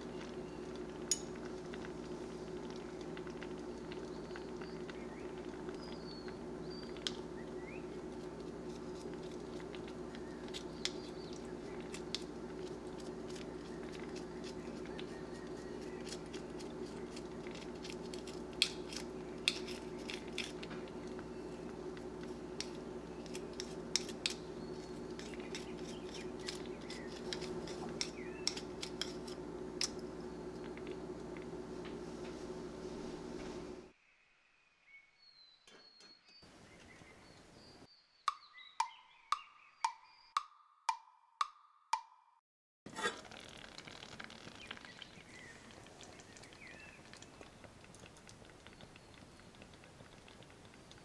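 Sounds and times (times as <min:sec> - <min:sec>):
steady low hum: 0:00.0 - 0:33.9
wood-block knocks: 0:38.3 - 0:42.3.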